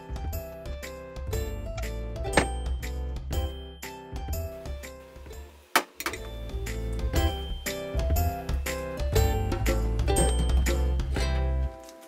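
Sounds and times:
background music with bass line: 0.0s - 5.6s, 6.2s - 11.8s.

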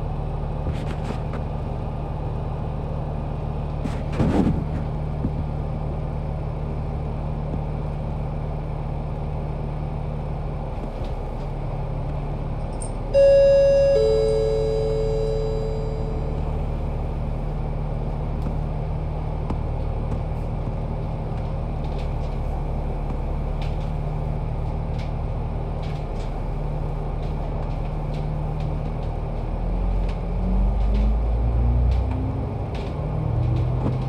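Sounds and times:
bus diesel engine running: 0.0s - 34.0s
road noise: 0.0s - 34.0s
two-tone ding-dong chime: 13.1s - 16.6s.

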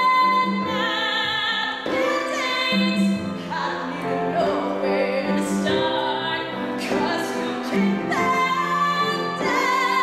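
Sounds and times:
piano accompaniment: 0.0s - 10.0s.

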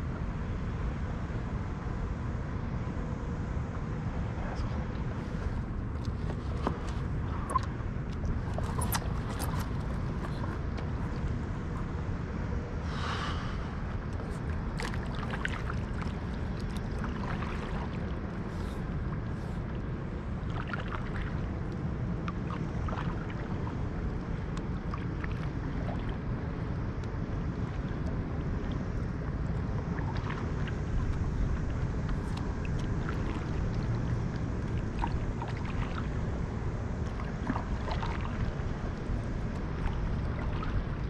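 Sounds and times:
steady low rumble: 0.0s - 41.0s
water splashing against boat: 4.2s - 41.0s.

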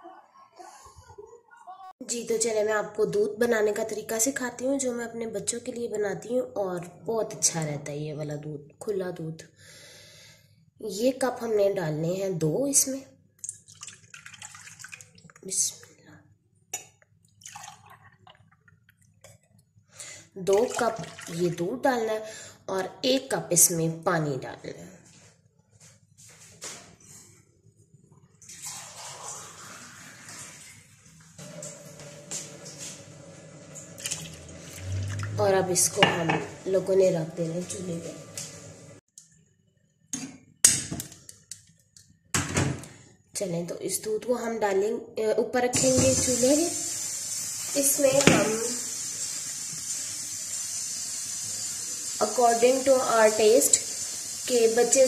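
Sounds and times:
water running into container: 13.4s - 15.7s, 17.4s - 19.0s, 20.4s - 21.7s, 28.4s - 36.8s, 45.8s - 55.0s.

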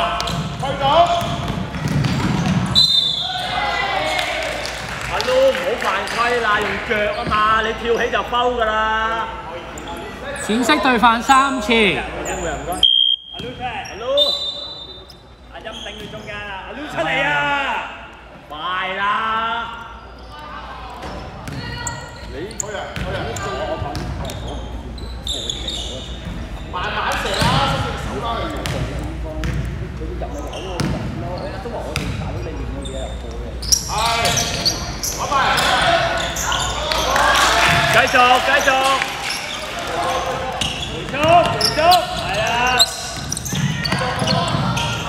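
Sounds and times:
basketball bouncing on hardwood: 1.2s - 2.6s.

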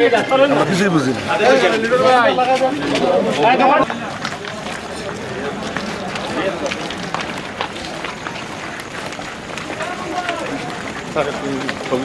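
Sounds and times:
men talking indistinctly: 0.0s - 8.0s, 9.6s - 12.0s
group footsteps walking: 0.0s - 12.0s.

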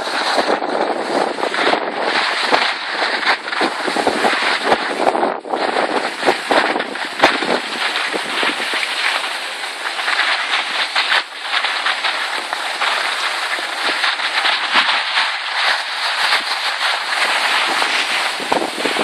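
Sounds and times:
skis scraping over snow: 0.0s - 19.0s
wind buffeting microphone: 0.0s - 19.0s.

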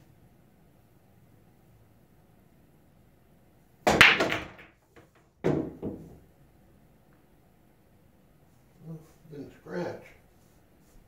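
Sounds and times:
cue striking cue ball: 3.9s - 6.2s
pool balls clattering together: 3.9s - 6.3s.

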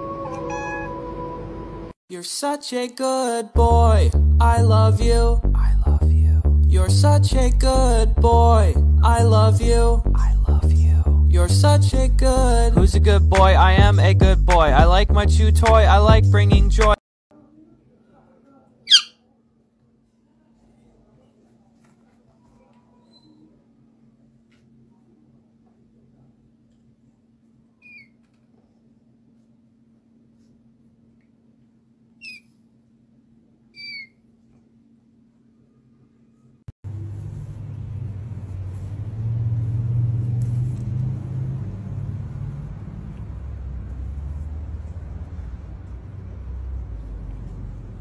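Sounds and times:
kitten mewing: 0.2s - 1.0s
steady low rumble: 3.6s - 16.9s, 36.9s - 48.0s.

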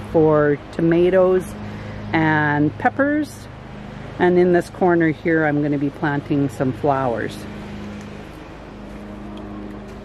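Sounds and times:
low motor hum: 0.0s - 10.0s.

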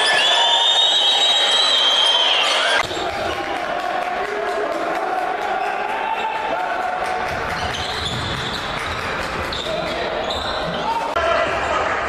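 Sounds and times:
voices in echoing arena: 0.0s - 12.0s
basketball bouncing on court: 7.2s - 10.8s.

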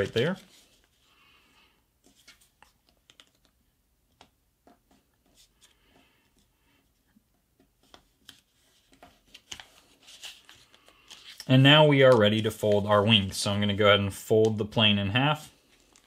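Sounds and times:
paper being folded and creased: 0.0s - 1.1s, 2.0s - 3.6s, 7.8s - 13.2s, 15.3s - 16.0s.

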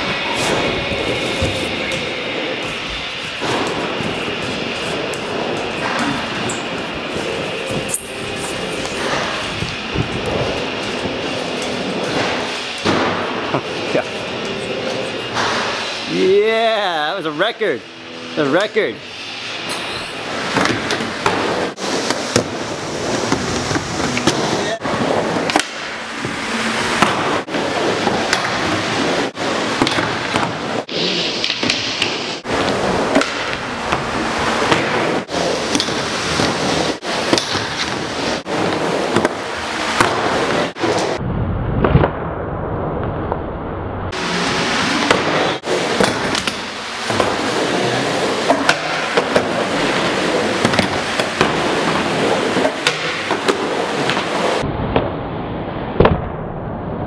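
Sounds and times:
skateboard wheels rolling: 0.0s - 16.3s, 19.6s - 41.2s, 44.1s - 54.7s.

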